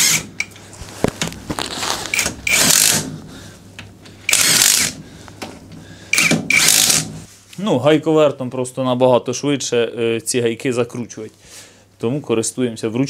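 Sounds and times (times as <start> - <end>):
impact wrench hammering: 0.0 - 0.6, 2.2 - 3.2, 4.3 - 5.0, 6.1 - 7.2.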